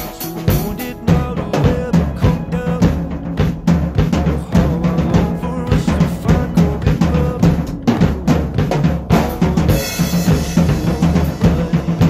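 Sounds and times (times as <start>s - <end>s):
acoustic drum kit beat: 0.0s - 12.0s
pop song backing music: 0.0s - 12.0s.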